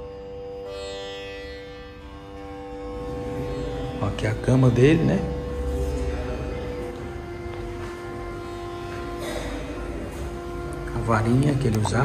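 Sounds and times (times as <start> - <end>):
instrumental music with drone: 0.0 - 12.0.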